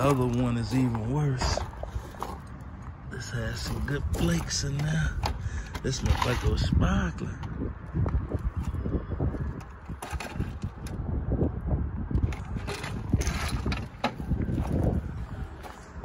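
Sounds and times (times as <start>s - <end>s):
footsteps on gravel: 0.0s - 6.1s, 12.9s - 16.0s
wind on microphone: 0.0s - 16.0s.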